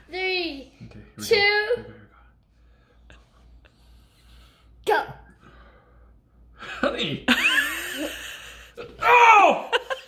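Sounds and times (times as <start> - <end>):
person shouting: 9.0 - 9.8.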